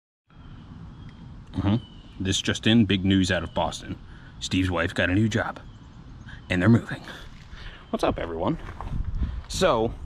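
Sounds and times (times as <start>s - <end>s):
man humming: 1.5s - 1.9s.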